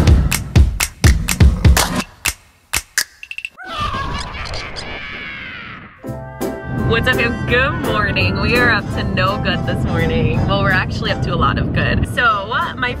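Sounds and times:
held music chord: 6.0s - 11.7s.

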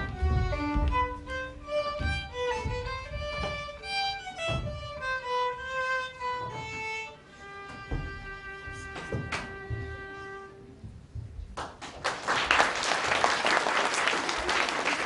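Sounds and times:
solo violin melody: 0.0s - 10.8s
dull low thumps: 0.0s - 11.6s.

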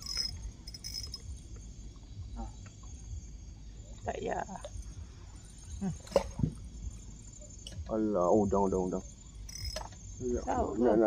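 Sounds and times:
faint insect trilling: 0.0s - 11.0s.

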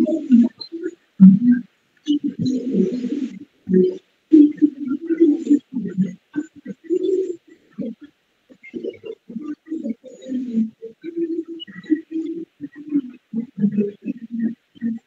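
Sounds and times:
muffled speech over video call: 0.0s - 15.0s.

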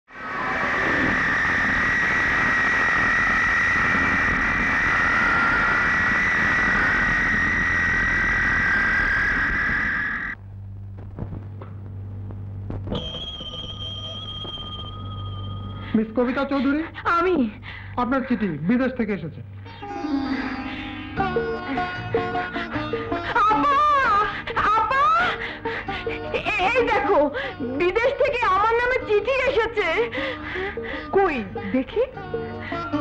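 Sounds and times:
jet engines roaring: 0.1s - 10.4s
steady high-pitched tone: 0.1s - 10.4s, 12.9s - 16.7s, 19.7s - 24.2s
low hum: 0.1s - 18.6s, 19.3s - 26.4s.

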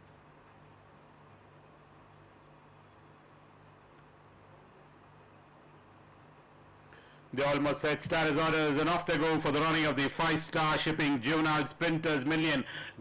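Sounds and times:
faint steady hiss: 0.0s - 13.0s.

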